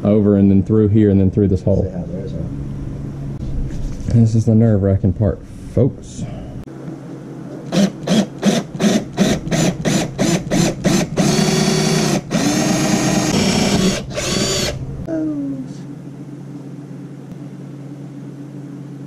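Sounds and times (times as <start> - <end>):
cordless drill boring: 7.7 - 14.8.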